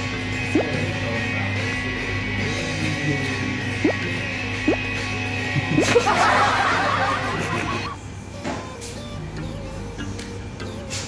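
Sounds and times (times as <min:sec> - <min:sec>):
quiet background music: 0:00.0 - 0:11.0
cartoonish giggling laughter: 0:05.6 - 0:08.0.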